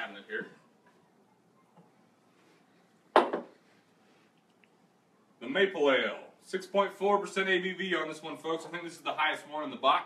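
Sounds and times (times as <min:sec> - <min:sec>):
glassware clink: 0:03.2 - 0:03.5.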